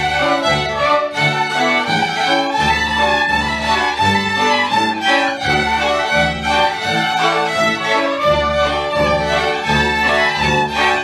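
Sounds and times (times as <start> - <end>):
bowed double bass pulse: 0.0 - 11.0
cello: 0.0 - 11.0
fiddles playing: 0.0 - 11.0.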